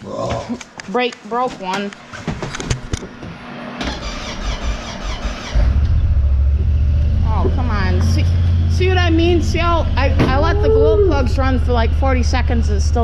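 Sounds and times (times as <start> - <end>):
diesel tractor engine running: 3.8 - 13.0
starter cranking diesel engine: 3.8 - 13.0.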